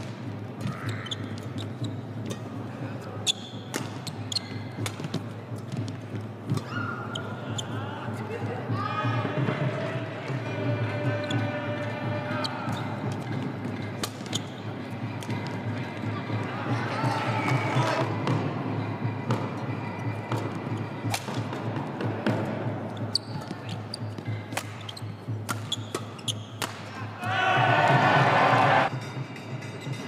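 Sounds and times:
crowd in large hall: 0.0s - 30.0s
racket striking shuttlecock: 3.7s - 4.1s, 14.0s - 14.4s, 20.3s - 21.6s, 24.2s - 26.9s.

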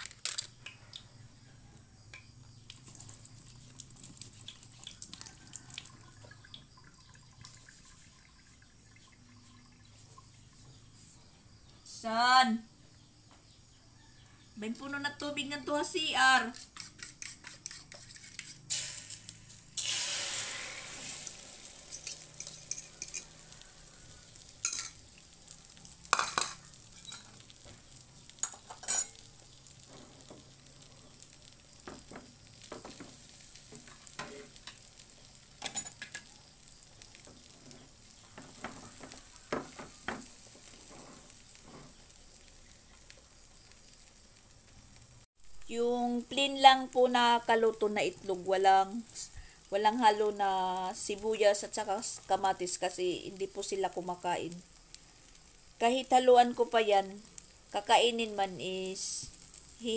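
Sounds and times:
egg sizzling in a frying pan: 0.0s - 11.9s, 12.8s - 59.9s
plastic spatula scraping a pan: 16.4s - 18.7s.

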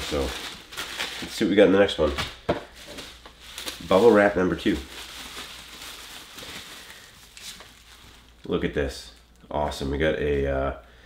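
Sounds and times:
bubble wrap crinkling: 0.0s - 9.9s.

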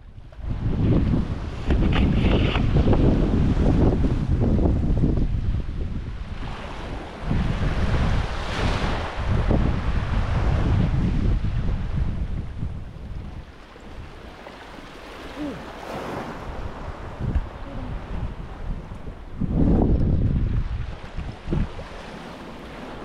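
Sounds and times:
wind buffeting the microphone: 0.0s - 23.0s
small waves washing over rocks: 20.8s - 23.0s.

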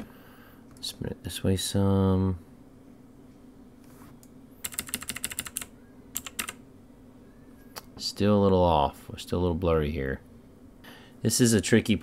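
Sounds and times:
room hum: 0.0s - 12.0s
computer keyboard typing: 4.6s - 6.6s.

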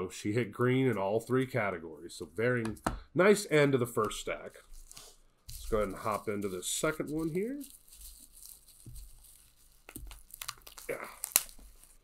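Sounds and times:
bubble wrap crinkling: 4.4s - 12.0s.

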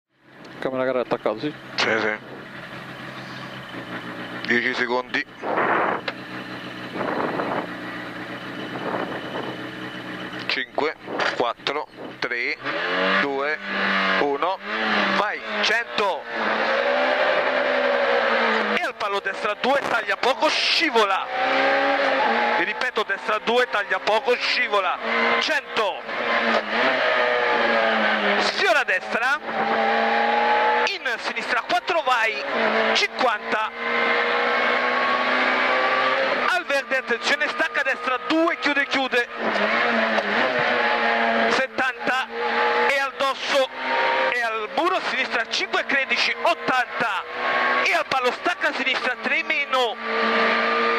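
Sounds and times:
car engine idling: 0.2s - 12.8s
rally car engine from inside: 0.4s - 50.9s.

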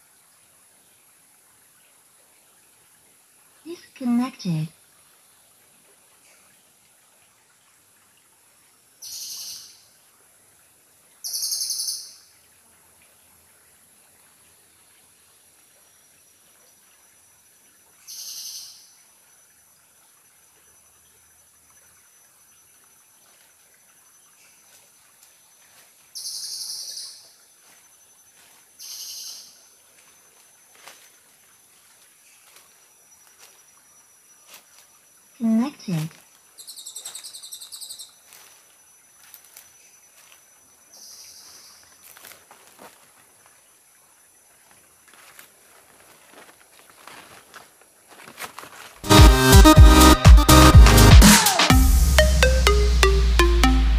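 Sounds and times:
faint steady high tone: 51.8s - 53.9s.

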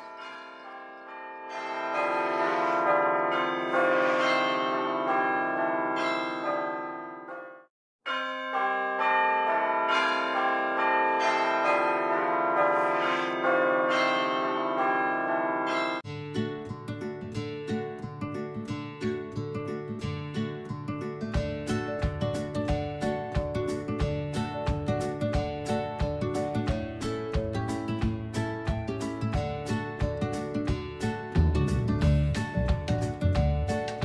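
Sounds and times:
church bells ringing: 0.0s - 16.1s.

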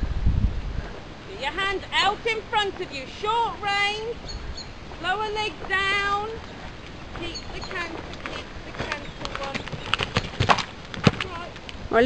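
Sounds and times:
horse hoofbeats on loose ground: 5.0s - 12.0s.

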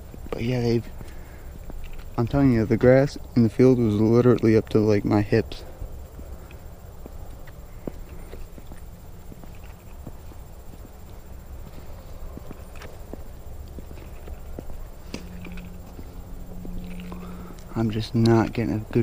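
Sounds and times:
steady low rumble: 0.0s - 19.0s
footsteps on ground and grass: 6.0s - 18.4s.

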